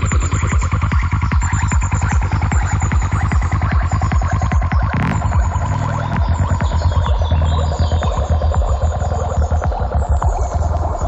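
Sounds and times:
psytrance music: 0.0s - 11.0s.

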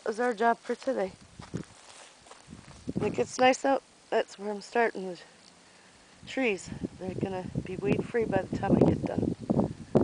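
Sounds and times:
footsteps on dry mulch: 0.1s - 3.4s.

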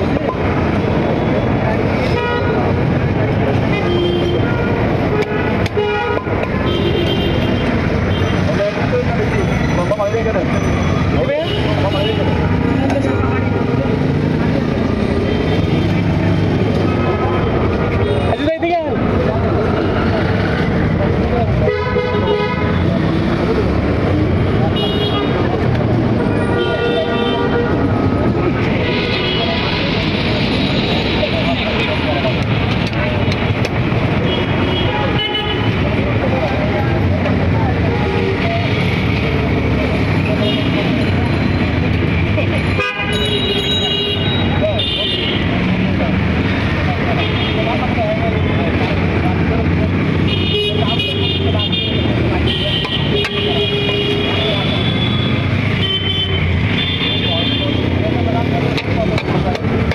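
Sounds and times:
traffic noise: 0.0s - 59.9s.

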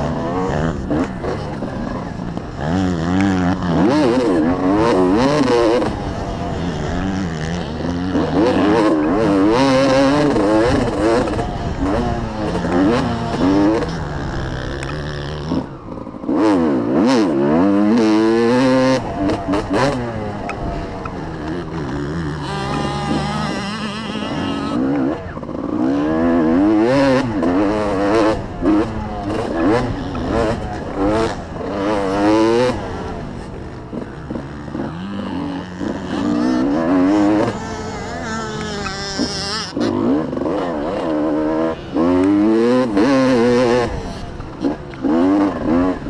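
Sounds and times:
dirt bike engine revving: 0.0s - 46.0s.

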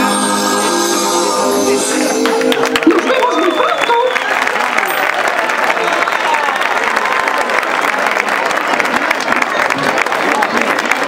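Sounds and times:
audience applauding: 2.0s - 11.0s.

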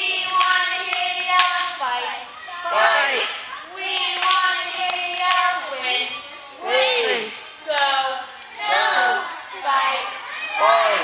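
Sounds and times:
girls chanting a cheer: 0.0s - 11.0s
sharp claps: 0.3s - 1.7s, 3.9s - 5.8s.

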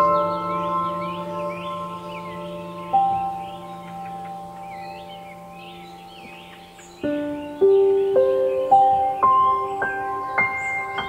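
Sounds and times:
birds chirping: 0.0s - 11.0s
slow soft piano music: 0.0s - 11.0s.

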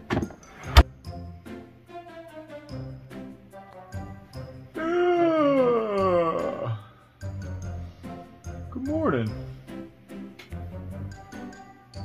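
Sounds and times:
person howling: 4.8s - 6.9s.

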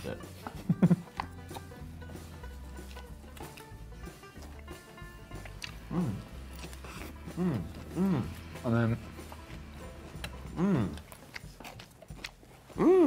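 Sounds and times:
soft background music: 0.0s - 13.0s
crunchy salad being chewed: 0.2s - 13.0s.

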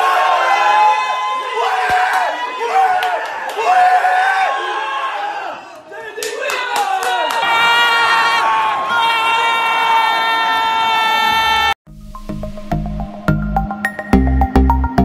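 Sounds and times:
men shouting and cheering: 0.0s - 11.8s.

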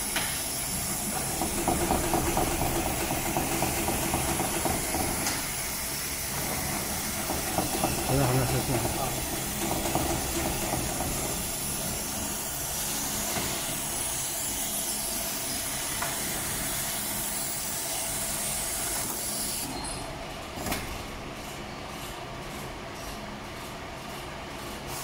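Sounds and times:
sewing machine motor humming: 0.7s - 17.7s.

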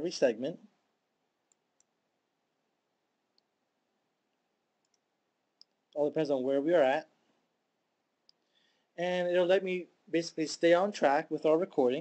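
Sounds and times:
faint room hiss: 0.0s - 12.0s
tiny faint clicks: 1.4s - 2.0s, 3.3s - 3.6s, 4.3s - 6.0s, 8.2s - 8.6s.

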